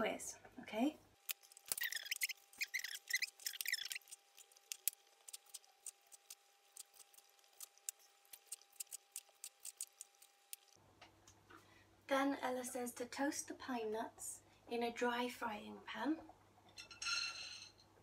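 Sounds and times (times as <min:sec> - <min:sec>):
knife scraping and cutting: 0:01.3 - 0:10.8.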